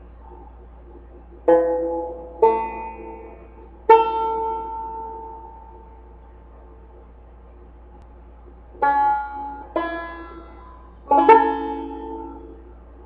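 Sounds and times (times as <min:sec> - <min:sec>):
banjo chords ringing: 0:01.3 - 0:06.1, 0:08.7 - 0:13.0.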